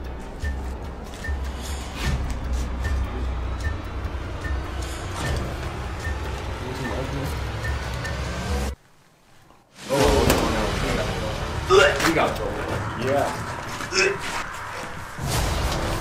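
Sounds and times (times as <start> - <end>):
low drone: 0.0 - 8.8.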